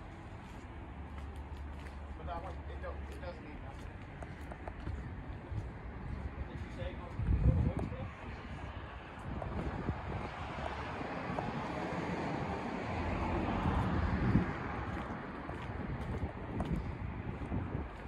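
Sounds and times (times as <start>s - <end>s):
wind rushing over microphone: 4.6s - 18.0s.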